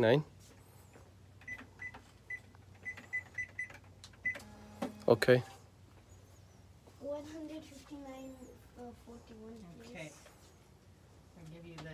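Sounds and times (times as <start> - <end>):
cash register beeps: 1.4 - 4.8.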